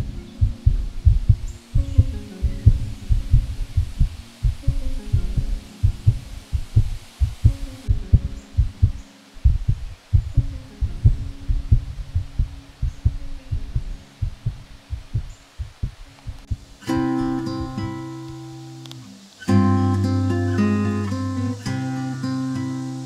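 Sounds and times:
heartbeat thumping: 0:00.0 - 0:16.7
faint low hum: 0:00.0 - 0:21.6.

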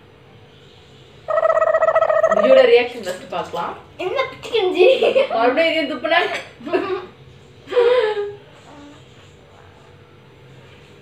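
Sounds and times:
high-pitched voice holding note: 0:01.3 - 0:02.6.

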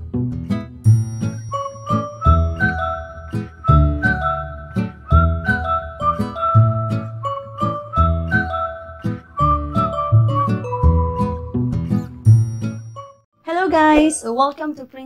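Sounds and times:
upbeat background music: 0:00.5 - 0:14.2.

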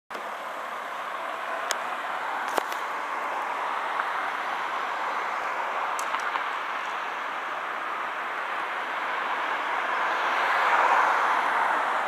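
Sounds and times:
street traffic hiss: 0:00.1 - 0:12.0.

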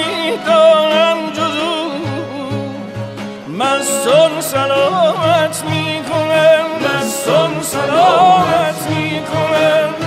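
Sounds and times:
plucked string instruments: 0:00.0 - 0:10.0.

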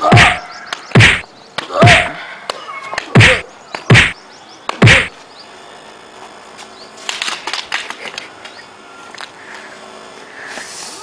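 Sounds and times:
wooden stick swish and hit: 0:00.1 - 0:01.3.

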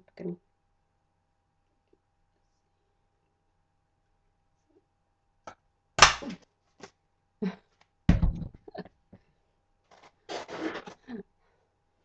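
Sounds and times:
sharp burst of tape: 0:10.3 - 0:11.0.

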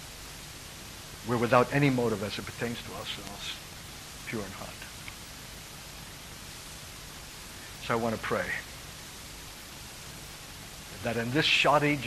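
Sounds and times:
recording hiss: 0:00.0 - 0:12.0
man speaking: 0:01.3 - 0:03.6, 0:04.3 - 0:04.9, 0:07.8 - 0:08.7, 0:11.0 - 0:12.0.

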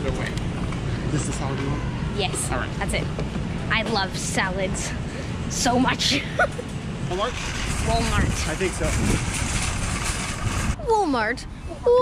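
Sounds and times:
low rumble: 0:07.1 - 0:11.5.

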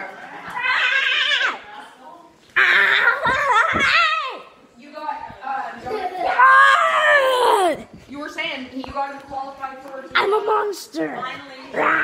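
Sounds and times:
child screaming: 0:06.4 - 0:07.8.

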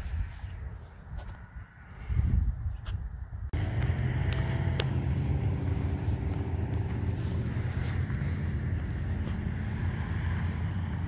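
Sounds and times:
low engine hum: 0:03.5 - 0:11.0.

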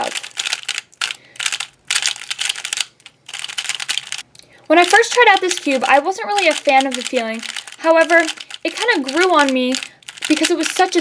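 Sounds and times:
puzzle cube turning and clicking: 0:00.0 - 0:11.0.

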